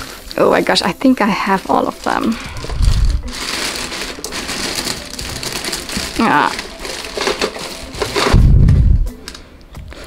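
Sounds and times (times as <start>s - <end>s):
plastic bag crinkling: 0.0s - 8.5s
loud low rumble: 2.5s - 3.3s, 8.3s - 9.1s
plastic toys clacking together: 3.3s - 8.4s.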